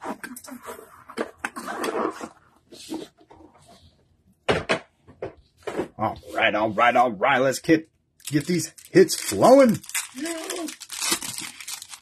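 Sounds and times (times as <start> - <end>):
plastic wrapper crinkling: 8.2 - 12.0.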